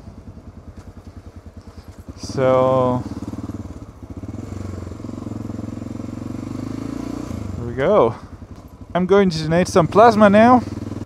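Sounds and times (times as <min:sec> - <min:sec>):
single-cylinder motorcycle engine running: 0:00.0 - 0:11.0.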